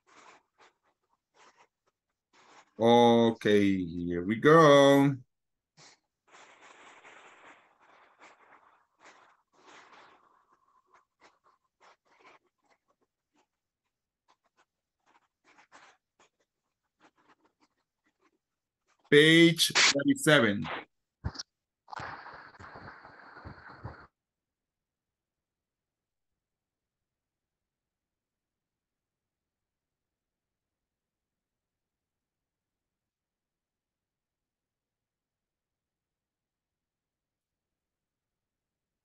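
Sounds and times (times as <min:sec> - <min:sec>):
faint short scratching: 0:05.8 - 0:13.6, 0:14.2 - 0:18.3.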